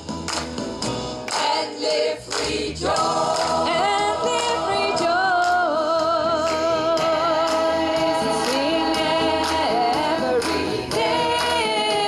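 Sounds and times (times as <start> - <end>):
mixed choir singing: 1.3 - 12.0.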